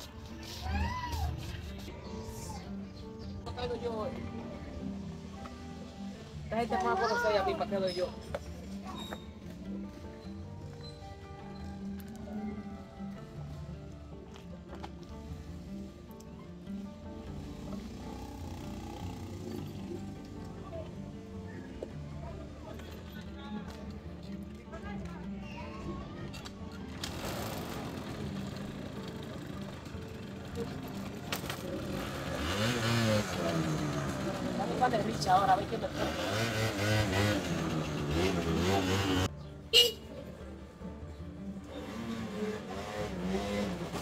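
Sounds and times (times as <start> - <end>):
background music: 0.0 - 44.0
scooter engine revving: 17.6 - 20.3, 26.9 - 39.3, 41.6 - 44.0.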